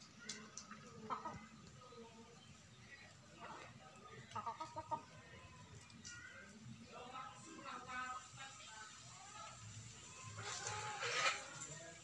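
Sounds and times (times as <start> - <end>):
chicken clucking: 0.3 - 6.3, 10.2 - 11.8.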